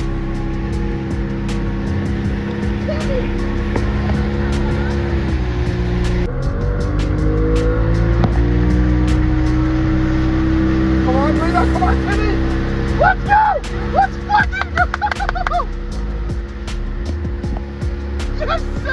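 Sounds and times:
outboard motor running: 0:00.0 - 0:18.9.

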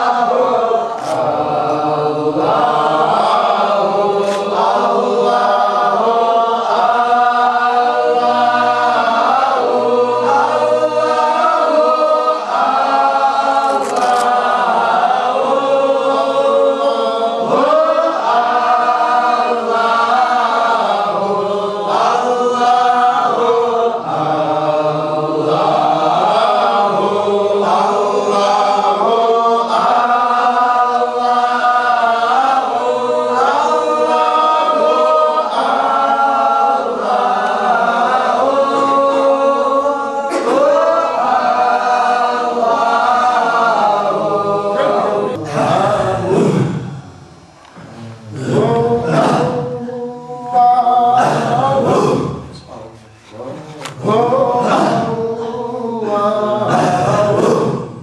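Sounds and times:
men chanting in unison: 0:00.0 - 0:47.2, 0:47.8 - 0:58.0.

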